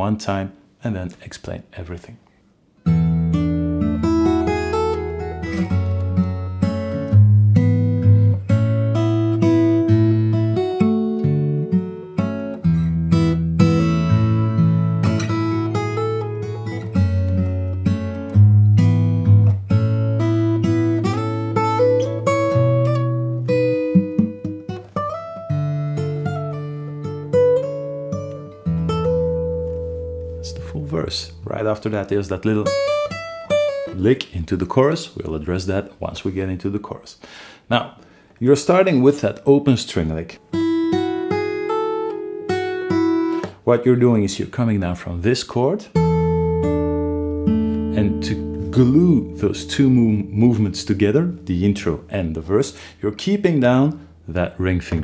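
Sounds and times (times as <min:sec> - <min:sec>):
fingerstyle acoustic guitar: 0:02.8 - 0:34.1, 0:40.4 - 0:43.7, 0:45.9 - 0:52.2.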